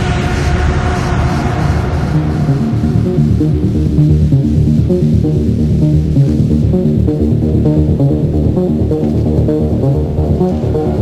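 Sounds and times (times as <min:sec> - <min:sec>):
italodance music: 0:02.0 - 0:11.0.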